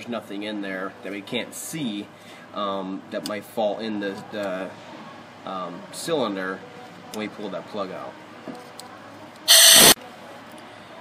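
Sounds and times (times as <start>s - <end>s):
compressed air blast: 9.5s - 10.0s.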